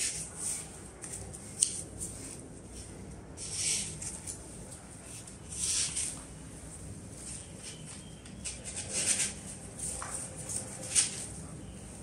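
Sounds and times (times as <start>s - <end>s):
artificial stems rustling: 0.0s - 12.0s.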